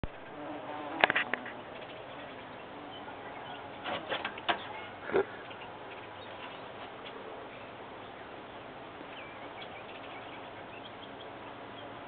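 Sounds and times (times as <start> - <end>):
bee buzzing: 0.1 - 5.4.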